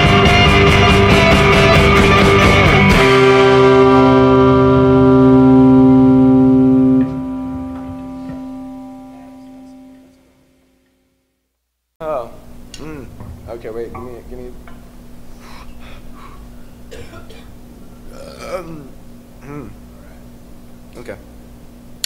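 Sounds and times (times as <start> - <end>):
rock band playing: 0.0 - 10.0
held electric guitar chord ringing: 0.0 - 11.2.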